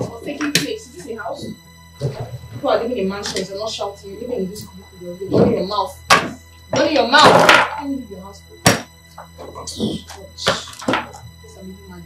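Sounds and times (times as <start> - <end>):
items thunking on wooden desk: 6.1 - 6.4, 8.7 - 9.3
person muttering: 9.4 - 12.0.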